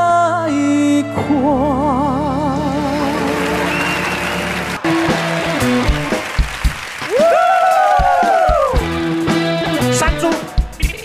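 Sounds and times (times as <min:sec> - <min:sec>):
guitar: 0:01.0 - 0:07.3, 0:08.0 - 0:11.0
band playing: 0:01.1 - 0:11.0
audience applause: 0:03.0 - 0:08.9
drum hits: 0:04.8 - 0:11.0.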